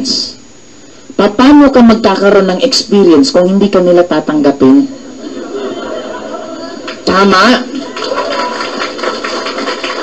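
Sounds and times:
audience applause: 0:06.8 - 0:10.0.

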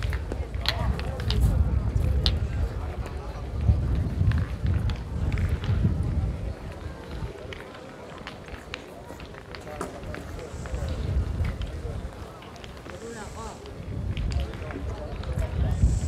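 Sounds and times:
wind rumble on microphone: 0:00.0 - 0:07.7, 0:09.9 - 0:16.0
indistinct voices: 0:09.0 - 0:16.0.

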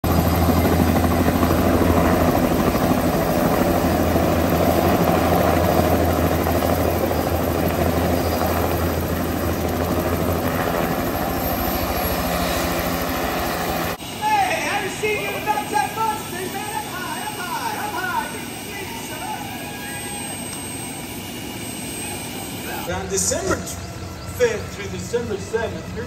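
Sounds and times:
helicopter engine noise: 0:00.0 - 0:26.0
helicopter rotor beat: 0:00.0 - 0:26.0.

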